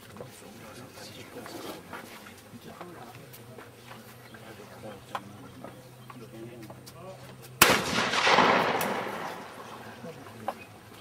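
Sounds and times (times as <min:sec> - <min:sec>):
shotgun shot: 0:07.6 - 0:09.8
rolling echo of shot: 0:07.6 - 0:09.9.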